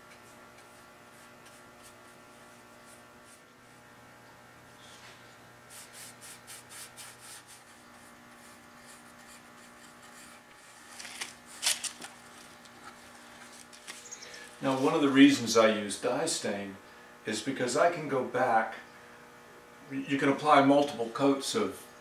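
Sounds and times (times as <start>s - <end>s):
faint electrical hum: 0.0s - 22.0s
rag rubbing stain on wood: 5.6s - 10.9s.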